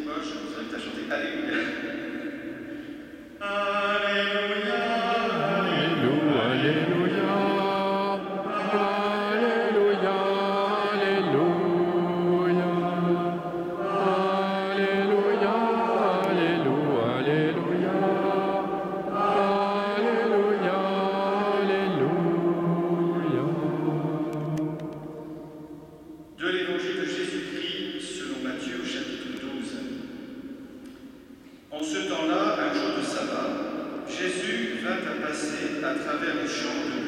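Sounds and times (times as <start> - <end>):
voices singing a slow chant: 0.0 - 31.4.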